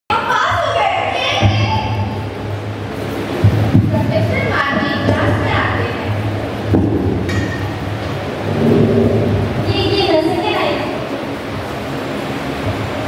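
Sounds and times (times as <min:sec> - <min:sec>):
children speaking into microphone: 0:00.1 - 0:02.2, 0:03.8 - 0:06.2
steady low hum: 0:00.5 - 0:13.0.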